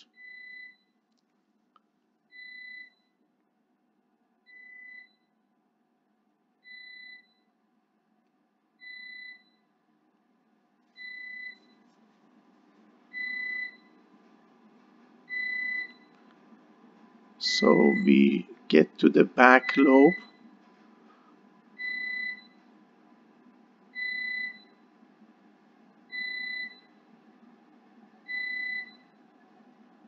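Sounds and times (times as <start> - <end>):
faint low hum: 0.0 - 30.0
high electronic beeps: 17.5 - 18.4.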